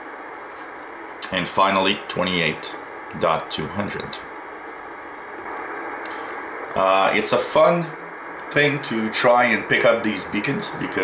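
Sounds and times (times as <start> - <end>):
radio receiver hiss: 0.0 - 11.0.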